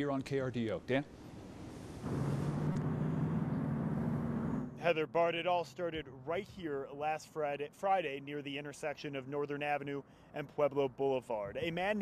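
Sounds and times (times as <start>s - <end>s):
road traffic passing: 0.6s - 12.0s.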